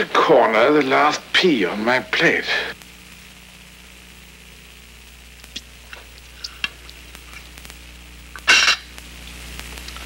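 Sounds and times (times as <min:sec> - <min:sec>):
steady hiss and hum: 0:00.0 - 0:10.0.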